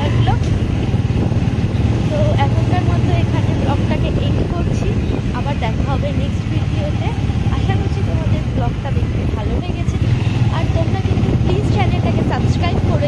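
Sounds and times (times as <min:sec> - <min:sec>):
motorbike engine drone: 0:00.0 - 0:13.0
voices talking: 0:00.0 - 0:13.0
wind rumble on microphone: 0:00.0 - 0:13.0.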